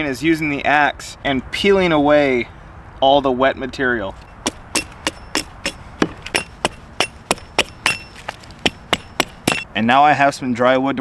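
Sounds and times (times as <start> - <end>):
axe chopping wood: 4.4 - 9.7.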